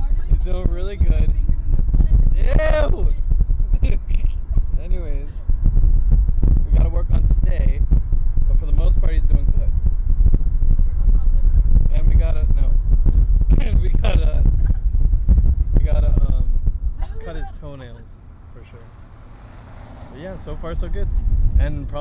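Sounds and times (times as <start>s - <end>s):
car cabin rumble: 0.0s - 18.1s
man laughing: 3.7s - 4.7s, 13.5s - 15.0s, 17.0s - 17.7s.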